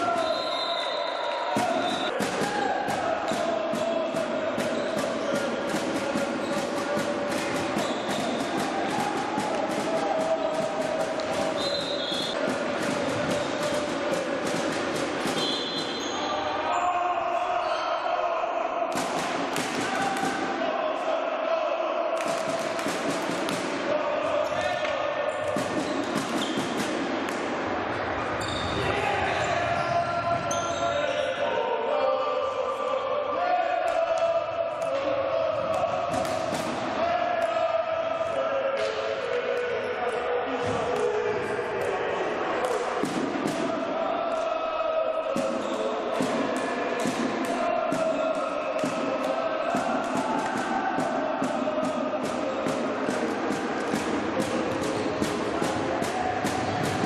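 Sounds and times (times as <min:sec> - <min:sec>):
players calling: 0:00.0 - 0:57.0
hockey sticks striking ball: 0:01.6 - 0:16.2, 0:24.6 - 0:27.6
ball hitting floor and boards: 0:24.8 - 0:27.5.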